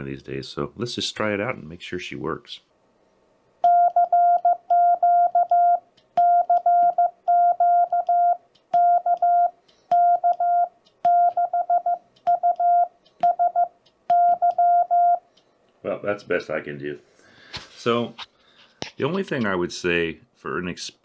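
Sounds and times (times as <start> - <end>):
morse code beeps: 3.6 - 15.2.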